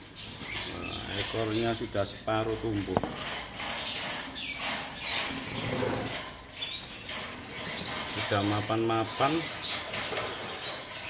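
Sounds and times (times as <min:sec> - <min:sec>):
bird chirp: 0:00.0 - 0:11.0.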